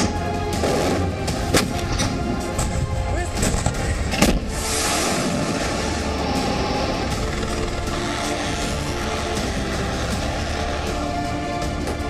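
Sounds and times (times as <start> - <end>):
dramatic background music: 0.0 - 12.0
steady rushing noise: 1.2 - 12.0.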